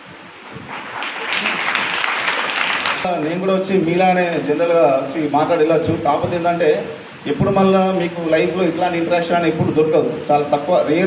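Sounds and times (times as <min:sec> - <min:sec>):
audience applauding: 0:00.4 - 0:03.4.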